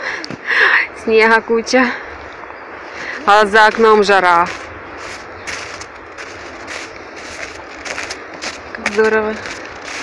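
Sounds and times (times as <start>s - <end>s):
footsteps crunching on snow: 3.5s - 10.0s.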